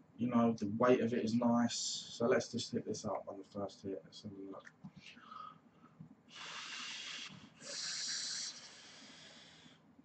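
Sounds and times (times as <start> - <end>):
hissing draw on a vape: 6.4 - 9.6.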